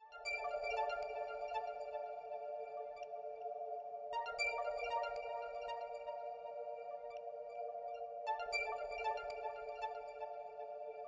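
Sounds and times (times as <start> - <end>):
background music with held chords: 0.0 - 11.0.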